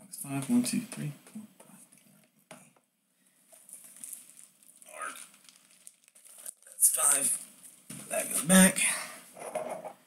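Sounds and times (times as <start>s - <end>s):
cardboard packaging rustling: 3.5s - 8.4s.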